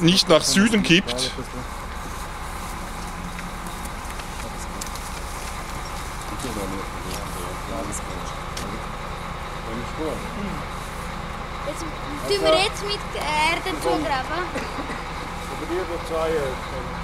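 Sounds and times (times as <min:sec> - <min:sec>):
faint voices: 0:00.0 - 0:01.9, 0:04.0 - 0:09.0
crane engine idling: 0:00.0 - 0:17.0.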